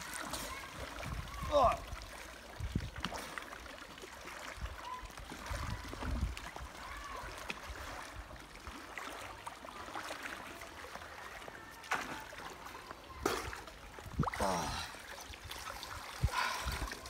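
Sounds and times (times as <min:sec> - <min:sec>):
pool water sloshing and splashing: 0:00.0 - 0:17.0.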